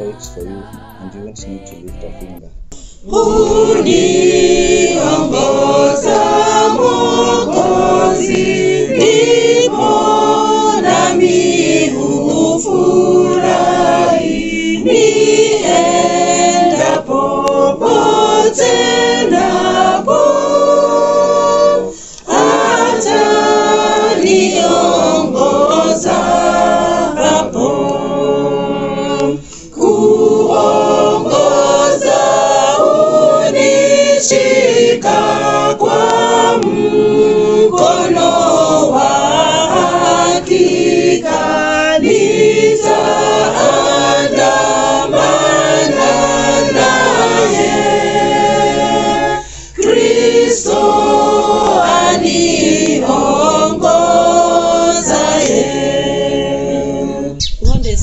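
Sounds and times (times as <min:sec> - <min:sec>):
group singing a hymn unaccompanied: 0:00.0 - 0:58.0.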